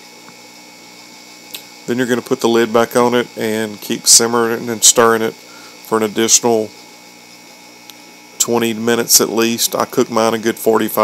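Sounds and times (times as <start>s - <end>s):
low background hum: 0.0s - 11.0s
man's voice: 8.4s - 11.0s.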